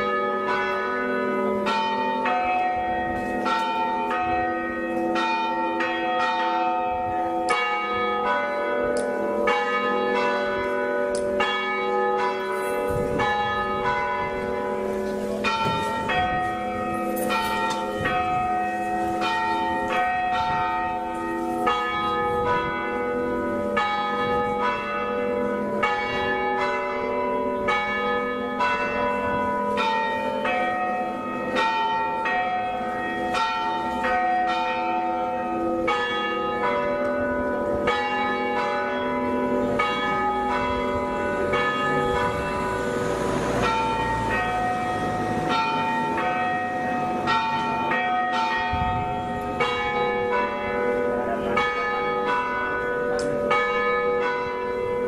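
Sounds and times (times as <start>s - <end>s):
church bells ringing a peal: 0.0s - 55.0s.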